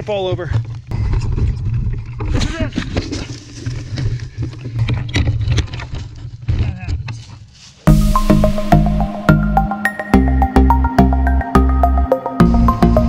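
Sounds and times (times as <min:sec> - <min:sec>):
wind rumbling on microphone: 0:00.5 - 0:06.7
electronic music: 0:07.9 - 0:13.0.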